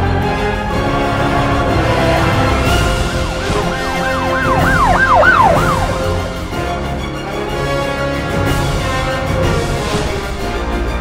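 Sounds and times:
siren-like sound effect: 0:03.1 - 0:07.0
reggae music: 0:03.4 - 0:06.7.

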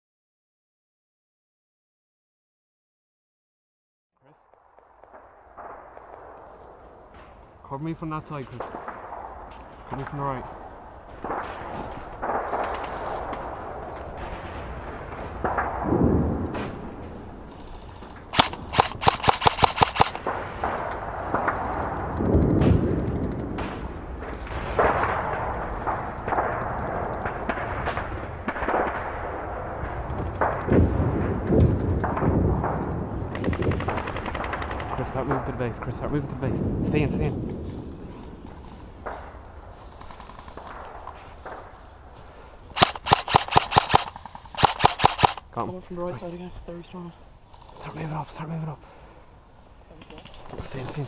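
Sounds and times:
airsoft rifle shots: 0:18.3 - 0:29.2, 0:42.8 - 0:45.4
rustling through undergrowth: 0:39.6 - 0:48.4.

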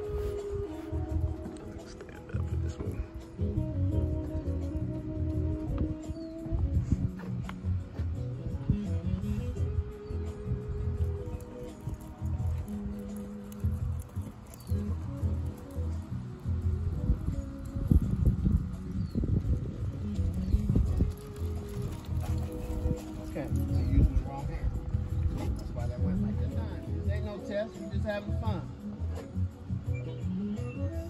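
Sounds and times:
music with held bass notes: 0:00.0 - 0:31.0.

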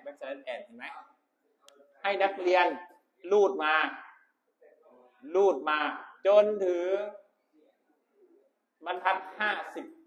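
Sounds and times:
man speaking in echoing room: 0:01.5 - 0:10.0.

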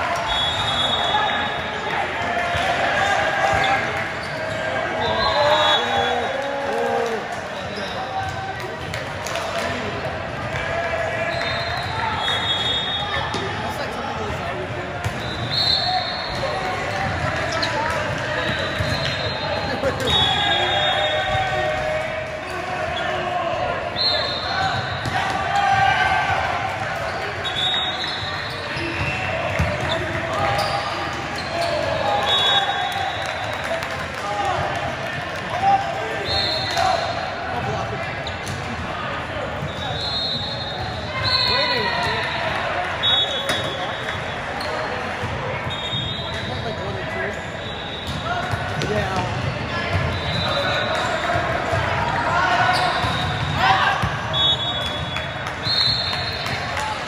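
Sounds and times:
spectators chattering: 0:00.0 - 0:57.0
sneaker squeaks on court: 0:18.4 - 0:19.4, 0:27.1 - 0:31.8, 0:52.7 - 0:53.6.

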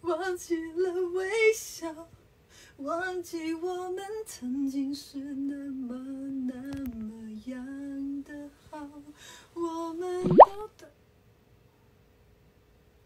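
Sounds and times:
woman singing unaccompanied: 0:00.0 - 0:02.2, 0:02.8 - 0:10.9
pop sound effect sweeping upward: 0:10.2 - 0:10.6.

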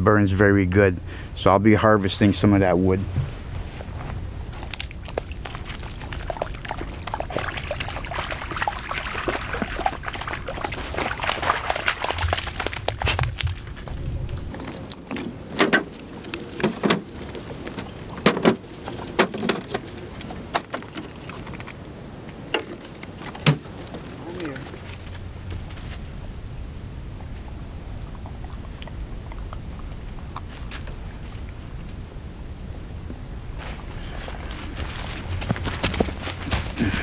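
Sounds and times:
low steady rumble: 0:00.0 - 0:20.5, 0:24.2 - 0:37.0
firewood knocking while stacked: 0:23.3 - 0:23.7.

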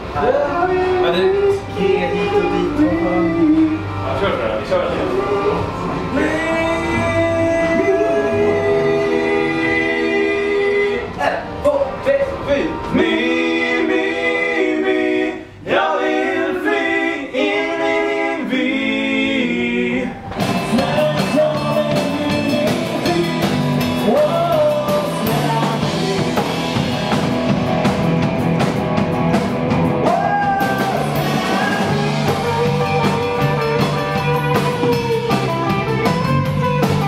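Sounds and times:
bass guitar: 0:00.0 - 0:14.6, 0:19.7 - 0:37.0
pop-rock song with singing: 0:00.1 - 0:11.2, 0:12.9 - 0:37.0
drums: 0:20.2 - 0:37.0
electric guitar: 0:20.3 - 0:37.0.

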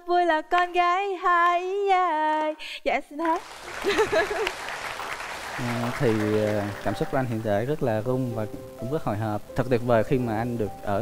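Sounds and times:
audience applauding: 0:03.2 - 0:08.1
person speaking: 0:05.6 - 0:11.0.

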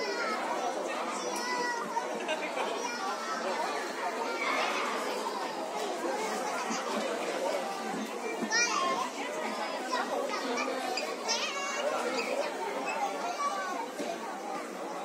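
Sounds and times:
background chatter: 0:00.0 - 0:15.0
children playing voices: 0:00.0 - 0:15.0.

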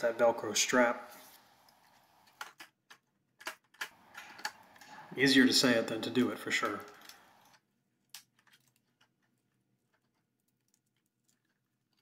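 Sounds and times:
faint clicks and taps: 0:06.6 - 0:12.0.

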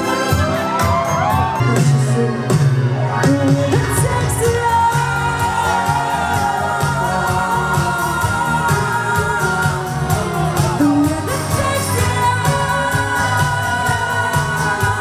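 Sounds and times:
live pop music with female vocals: 0:00.0 - 0:15.0.

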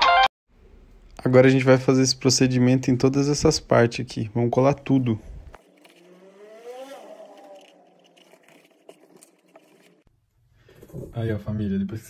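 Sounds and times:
faint vehicle engine speeding up: 0:05.4 - 0:10.1.

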